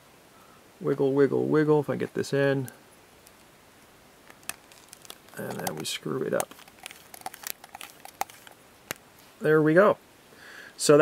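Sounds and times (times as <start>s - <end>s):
plastic pen barrel clicking: 4.3s - 9.0s.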